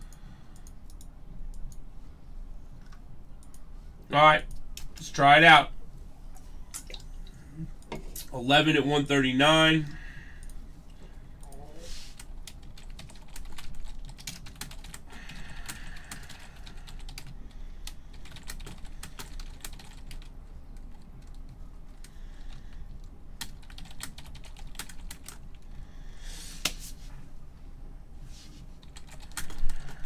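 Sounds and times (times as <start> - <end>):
computer keyboard typing: 12.2 - 25.5, 28.8 - 30.0.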